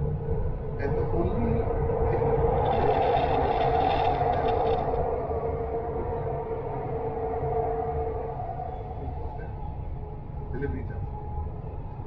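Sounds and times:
rush of noise: 0.0s - 10.4s
train rumble: 0.0s - 11.3s
two-tone train whine: 0.0s - 12.0s.

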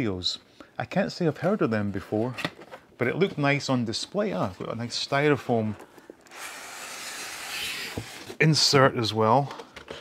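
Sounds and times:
styrofoam scraping out of box: 6.3s - 8.4s.

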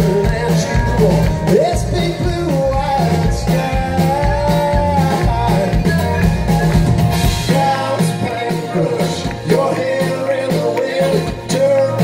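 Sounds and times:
live country band music: 0.0s - 12.0s.

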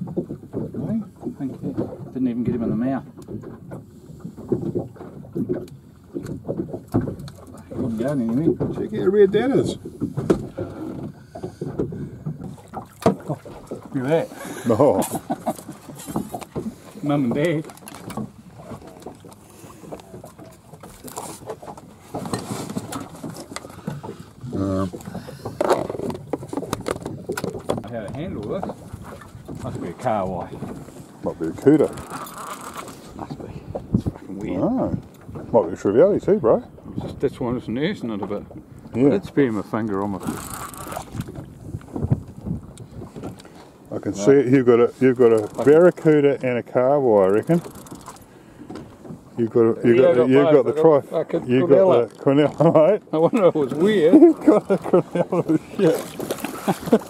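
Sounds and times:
water slapping against boat hull: 0.0s - 57.0s
wind buffeting microphone: 33.0s - 45.8s.

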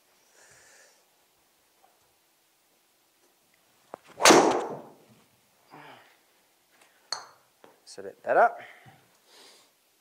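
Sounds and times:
golf club striking ball: 4.2s - 5.0s.

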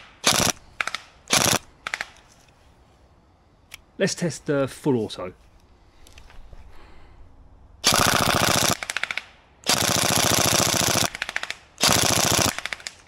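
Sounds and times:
airsoft gun firing bursts: 0.0s - 2.1s, 7.8s - 13.0s.

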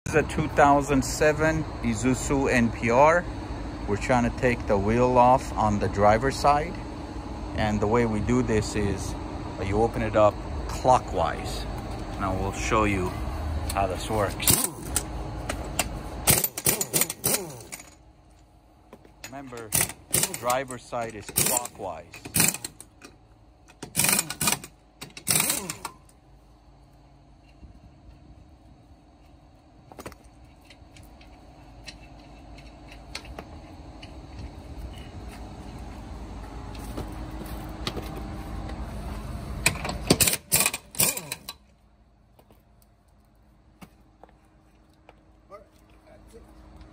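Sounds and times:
low hum: 0.1s - 46.9s
impact wrench hammering: 14.4s - 18.0s, 19.0s - 23.1s, 23.7s - 26.0s.

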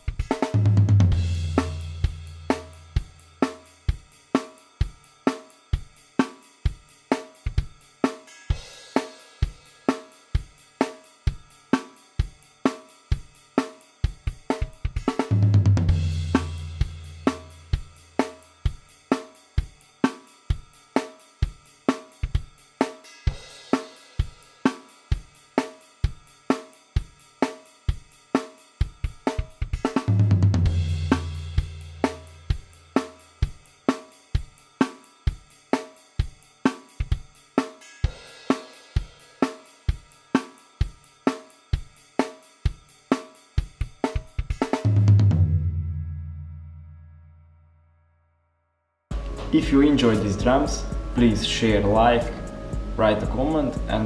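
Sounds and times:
rock drum beat: 0.0s - 46.3s, 49.1s - 54.0s
drum accent with long low ring: 0.0s - 47.2s, 49.1s - 54.0s.

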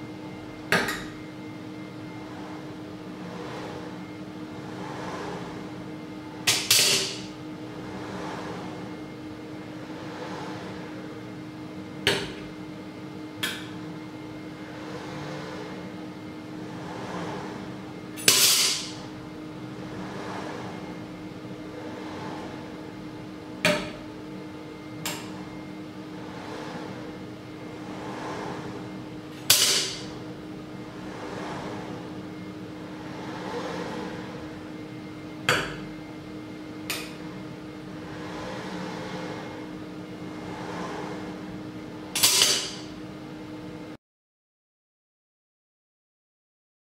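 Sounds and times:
steady hum: 0.0s - 44.0s.

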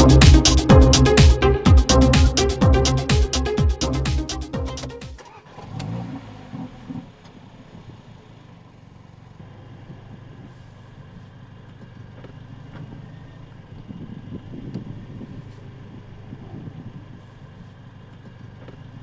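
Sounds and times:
car engine starting and idling: 0.0s - 19.0s.

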